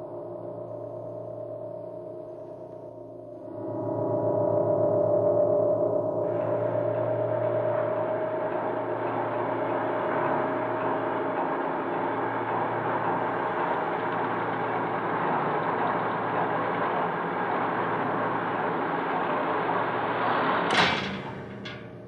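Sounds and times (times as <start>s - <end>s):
steel gate sliding shut: 17.6s - 22.0s.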